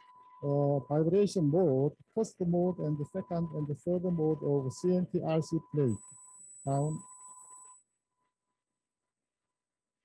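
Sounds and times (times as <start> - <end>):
faint electronic whine and hiss: 0.0 - 10.0.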